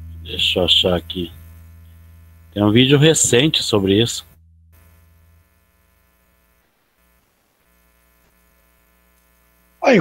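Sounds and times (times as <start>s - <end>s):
faint electrical hum: 0.0s - 10.0s.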